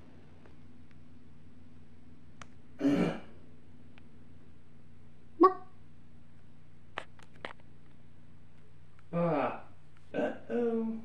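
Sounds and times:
person grunting: 0:09.1 - 0:11.0.

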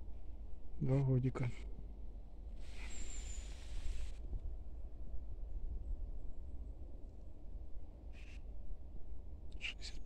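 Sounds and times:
hiss: 0:02.6 - 0:04.2.

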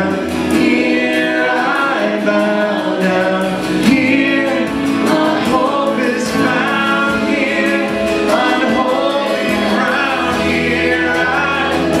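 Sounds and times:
choir of voices singing: 0:00.0 - 0:12.0
worship band with guitars: 0:00.0 - 0:12.0.

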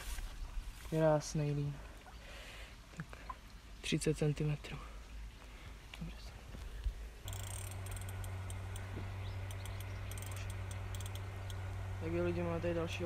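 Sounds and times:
faint high clicks: 0:05.9 - 0:11.7
steady low hum: 0:06.8 - 0:13.0.

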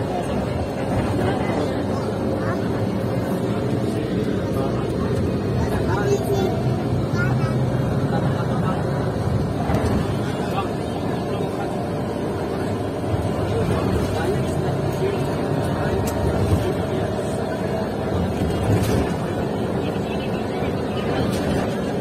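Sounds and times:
bus engine and road noise: 0:00.0 - 0:22.0.

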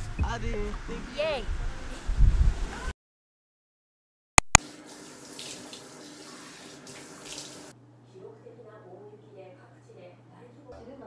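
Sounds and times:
sharp clicks: 0:04.4 - 0:04.6.

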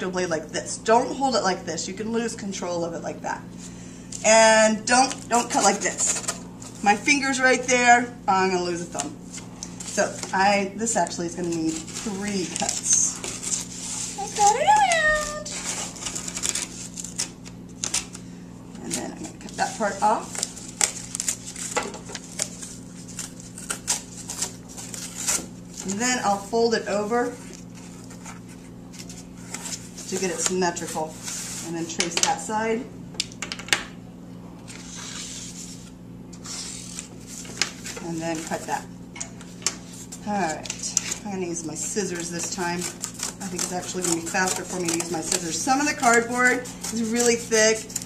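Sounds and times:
craft knife scratching cardboard: 0:42.2 - 0:48.0.

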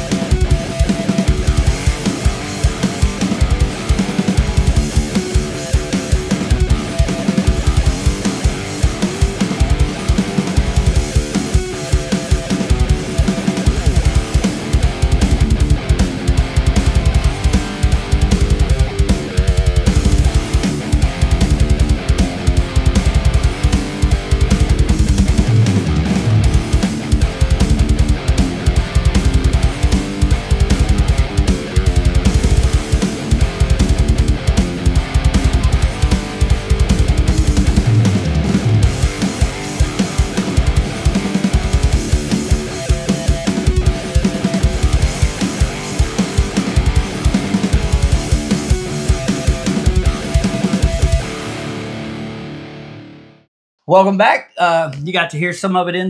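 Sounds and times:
drums: 0:00.0 - 0:53.2
distorted electric guitar riff: 0:00.0 - 0:53.5.

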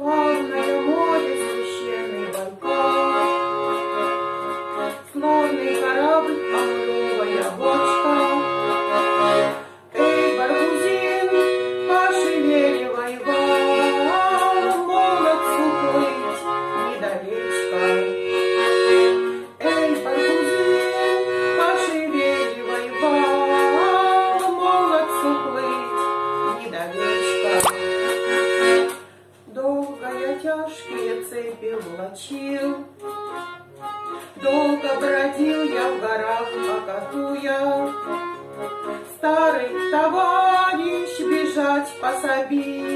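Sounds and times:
button accordion playing: 0:00.0 - 0:42.9.

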